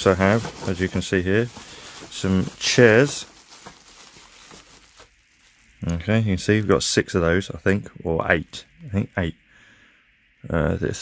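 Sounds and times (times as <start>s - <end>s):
bubble wrap crinkling: 0.0s - 6.9s.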